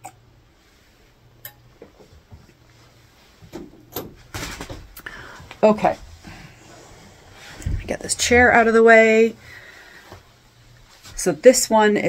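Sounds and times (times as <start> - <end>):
low hum: 4.9 - 10.9.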